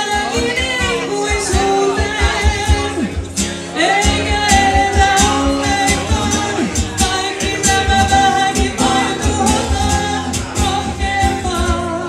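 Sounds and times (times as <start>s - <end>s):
guitar accompaniment: 0.0s - 12.0s
woman singing: 0.0s - 12.0s
steady beat: 0.5s - 11.8s.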